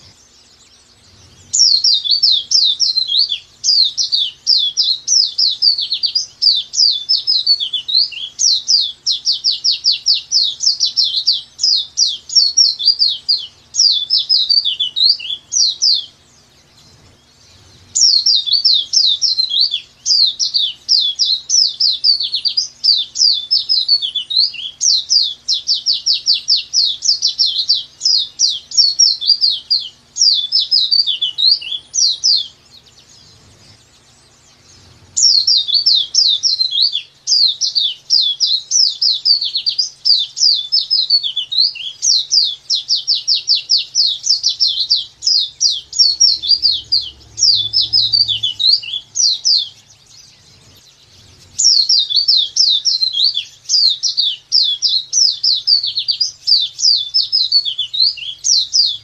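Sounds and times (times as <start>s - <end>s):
bird chirping song: 0.0s - 59.0s.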